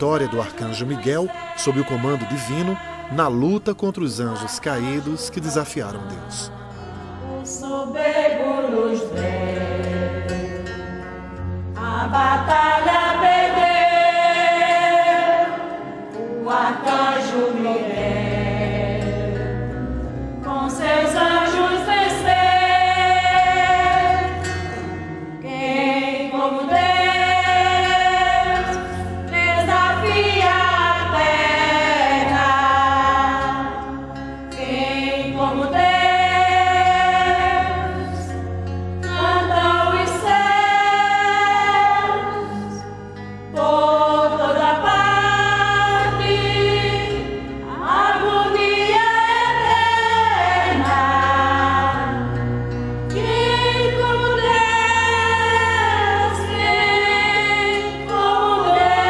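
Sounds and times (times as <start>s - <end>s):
women's choir singing a hymn: 0.0s - 59.0s.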